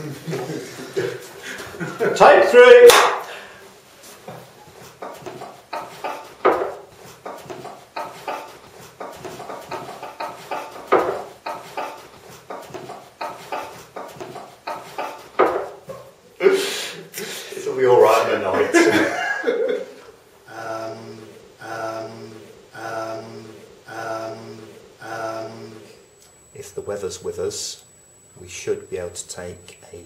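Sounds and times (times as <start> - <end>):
men laughing: 0.0 - 2.4, 4.8 - 17.2, 18.4 - 21.1.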